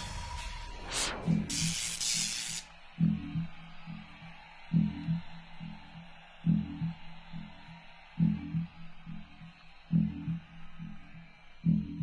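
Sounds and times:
slow bass-heavy beat: 0.0s - 5.6s, 11.7s - 12.0s
whooshing noise sweep: 0.3s - 1.8s.

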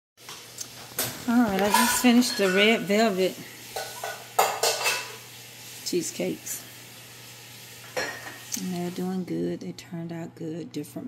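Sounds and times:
kitchen utensils clattering: 0.2s - 5.3s, 7.8s - 8.5s.

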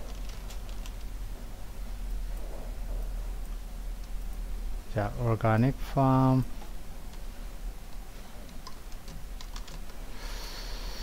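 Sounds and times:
keyboard typing: 0.0s - 1.2s, 8.4s - 10.0s
steady low hum: 0.0s - 11.0s.

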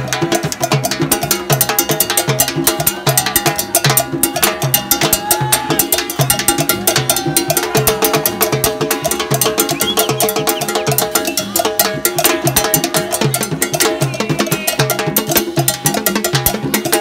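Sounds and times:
salsa music with percussion: 0.0s - 17.0s.

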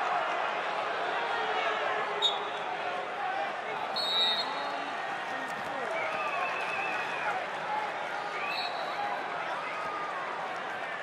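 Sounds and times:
referee's whistle: 4.0s - 4.6s, 8.4s - 9.0s.

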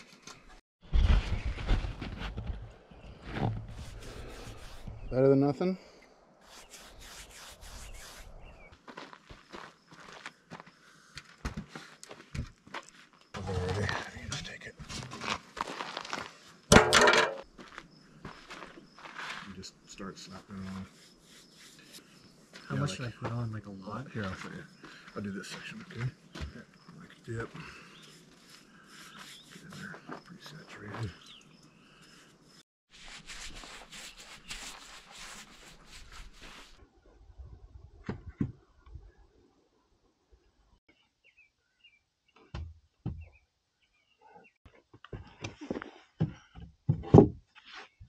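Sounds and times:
paintbrush scraping on rough wood: 3.3s - 5.1s, 6.4s - 8.7s, 19.1s - 23.0s, 27.7s - 31.2s, 32.0s - 36.8s
bucket lid clattering on ground: 16.7s - 17.4s.

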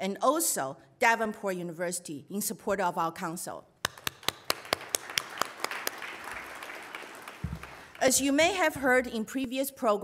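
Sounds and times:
audience applause: 4.0s - 8.0s.

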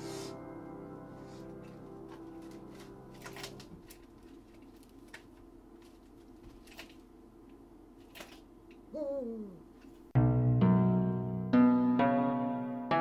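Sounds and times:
piano chord ringing: 0.0s - 3.2s, 10.2s - 13.0s.

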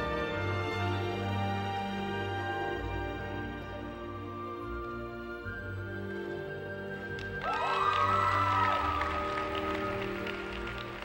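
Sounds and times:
music playing: 0.0s - 11.0s
audience applause: 7.2s - 11.0s
crowd whooping: 7.4s - 11.0s.

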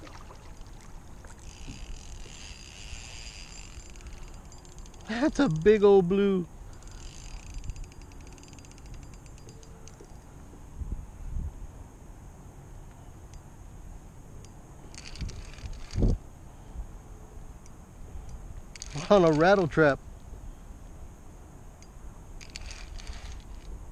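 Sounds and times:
fishing reel ticking rapidly: 1.4s - 10.3s, 14.9s - 16.1s, 18.8s - 19.8s, 22.4s - 23.7s
wind noise on microphone: 6.9s - 11.8s, 14.8s - 17.0s, 22.4s - 23.9s.

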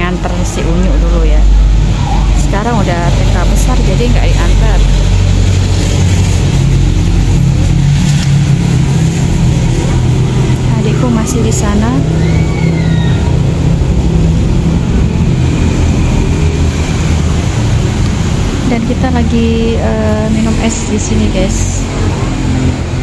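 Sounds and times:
vehicle engine running: 0.0s - 23.0s.

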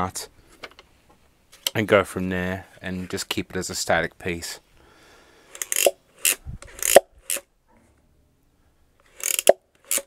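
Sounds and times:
plastic robot claw clicking: 5.5s - 7.4s, 9.1s - 10.0s.

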